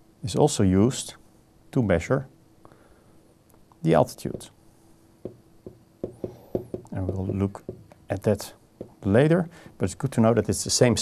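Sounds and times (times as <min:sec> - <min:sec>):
stylus tapping on pen tablet: 0:05.2 - 0:08.0, 0:08.8 - 0:09.0.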